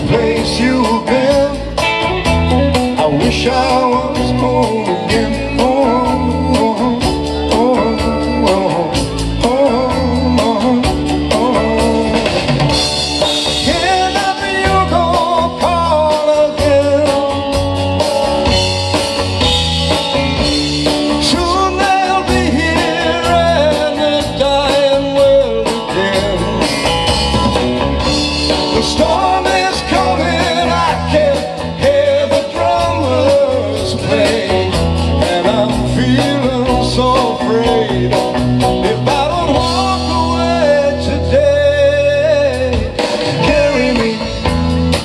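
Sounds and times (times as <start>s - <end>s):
person singing: 0.0s - 12.6s, 13.4s - 18.0s, 21.1s - 27.0s, 28.5s - 44.7s
live blues-rock band: 0.0s - 45.0s.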